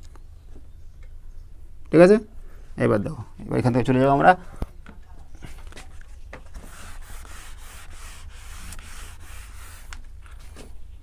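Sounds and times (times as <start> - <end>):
eraser wiping whiteboard: 6.5 - 10.0.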